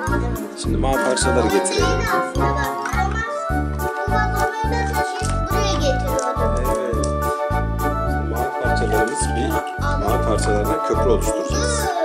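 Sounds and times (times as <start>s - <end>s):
electronic keyboard tune: 0.0s - 12.0s.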